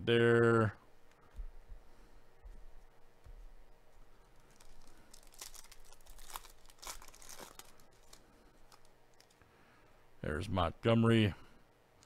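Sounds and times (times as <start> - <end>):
plastic wrapper tearing and crinkling: 4.3 - 9.4.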